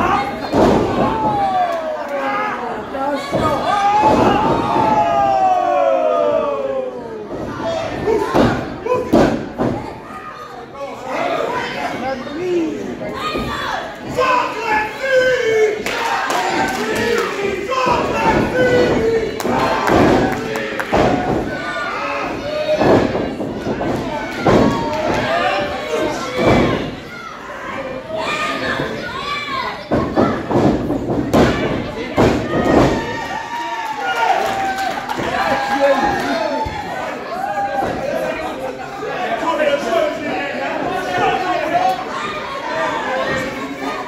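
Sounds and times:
crowd shouting: 0.0 - 9.1, 13.1 - 30.4.

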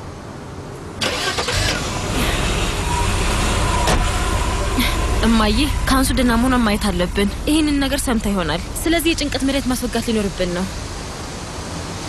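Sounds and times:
car engine starting and idling: 1.0 - 11.2.

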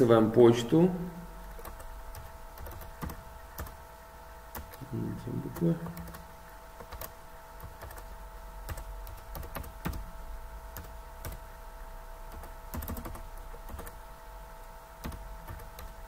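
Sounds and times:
faint hum: 0.0 - 16.0
computer keyboard typing: 1.4 - 3.8, 4.5 - 4.9, 5.5 - 10.1, 10.7 - 11.4, 12.3 - 14.0, 15.0 - 16.0.

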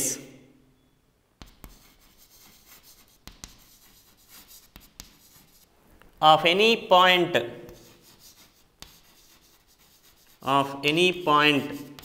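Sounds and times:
chalk scratching on chalkboard: 1.4 - 5.7, 7.6 - 12.0
chalk tapping on board: 1.4 - 5.7, 7.6 - 10.5, 11.6 - 12.0.

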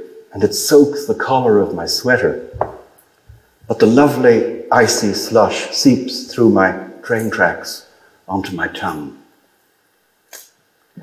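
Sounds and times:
man reading aloud: 0.0 - 2.6, 3.7 - 9.3.

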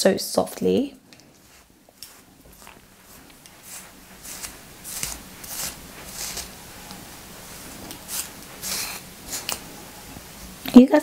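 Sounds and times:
comb brushing through hair: 0.5 - 10.8.

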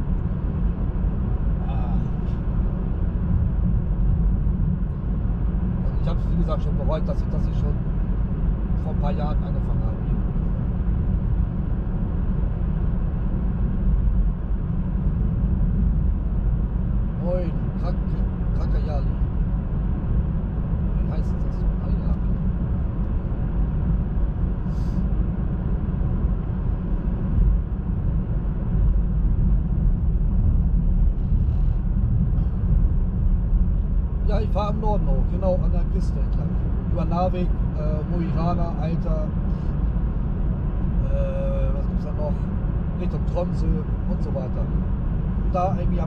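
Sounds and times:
tyre and road rumble in car: 0.0 - 46.0.

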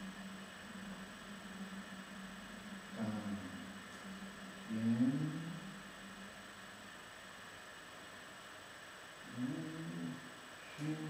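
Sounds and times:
man humming low tone: 0.0 - 7.0, 9.2 - 11.0.

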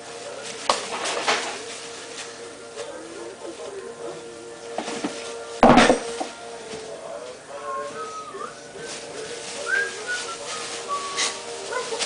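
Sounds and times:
tissue paper rustling and crinkling: 0.0 - 12.0.

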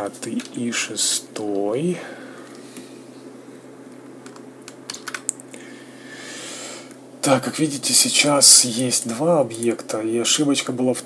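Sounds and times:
keyboard keys clicking: 4.2 - 5.4.

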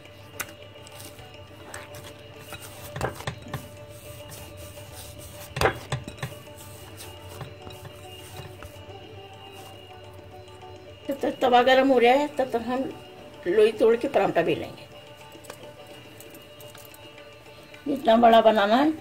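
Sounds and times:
soft background music: 0.0 - 19.0
dough knocking against glass bowl: 1.7 - 3.7, 5.4 - 8.8.

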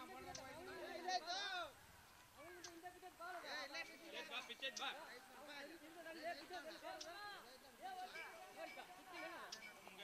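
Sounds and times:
boys talking quietly: 0.0 - 10.0.

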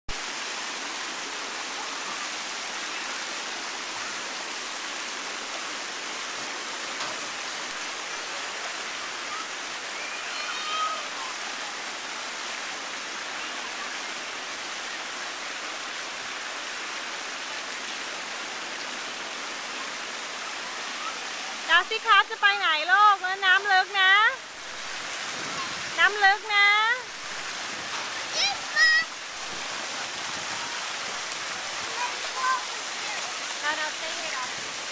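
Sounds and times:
running water rushing: 0.1 - 34.9
faint children's voices: 7.9 - 12.2, 12.9 - 15.9, 19.4 - 21.7, 25.3 - 26.0, 27.8 - 29.2, 30.2 - 34.9.

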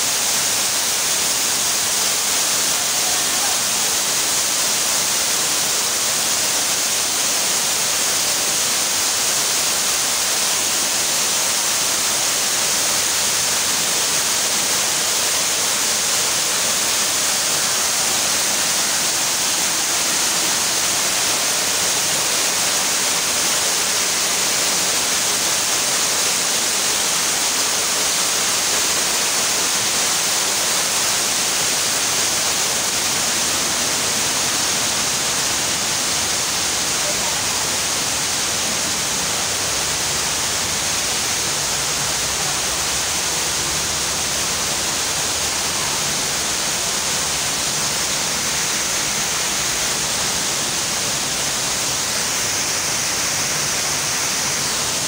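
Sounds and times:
waterfall rushing into pool: 0.0 - 55.0.

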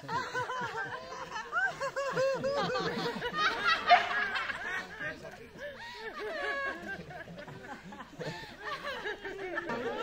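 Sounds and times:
people laughing together: 0.0 - 10.0.

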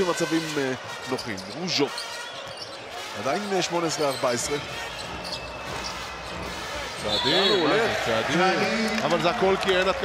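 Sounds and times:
arena crowd hum: 0.0 - 10.0.

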